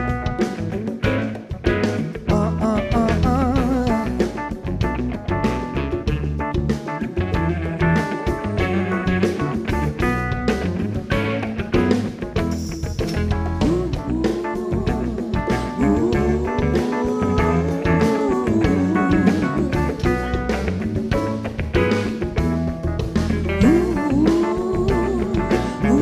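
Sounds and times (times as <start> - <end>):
live soul band playing: 0.0 - 26.0
singer holding vibrato notes: 13.6 - 20.1.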